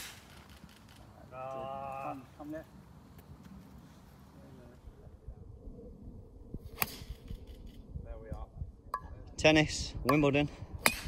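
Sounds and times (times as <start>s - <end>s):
low rumble: 4.6s - 10.0s.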